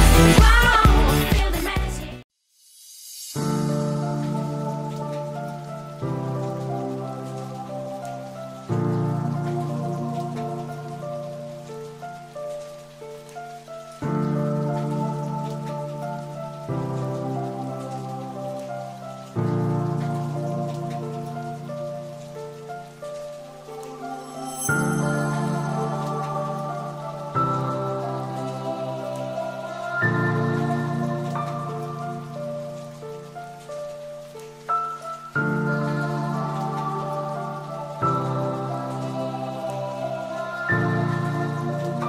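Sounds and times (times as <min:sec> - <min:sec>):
slow calm instrumental music: 0:00.0 - 0:02.2, 0:02.9 - 0:42.0
steady rain-like hiss: 0:02.4 - 0:42.0.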